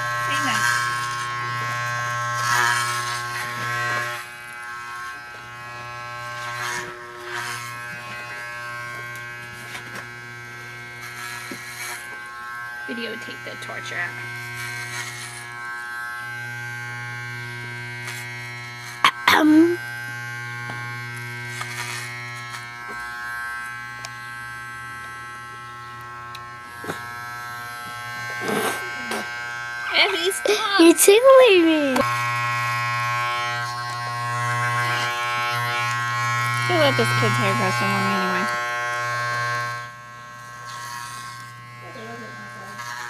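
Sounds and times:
electric hair clippers buzzing: 0:00.0 - 0:43.0.

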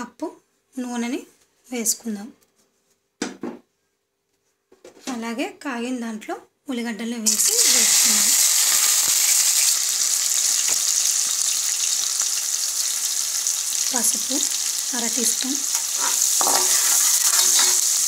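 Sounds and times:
onions sizzling in hot oil: 0:07.3 - 0:18.0.

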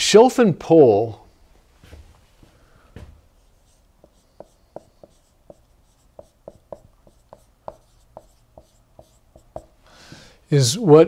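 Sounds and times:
marker writing on whiteboard: 0:03.3 - 0:09.8.

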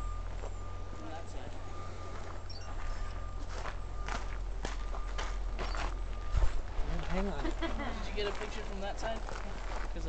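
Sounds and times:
steady low rumble: 0:00.0 - 0:10.0
footsteps on gravel: 0:00.3 - 0:10.0.

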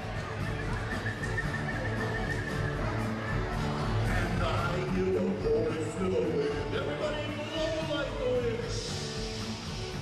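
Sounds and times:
string band playing live: 0:00.0 - 0:10.0.

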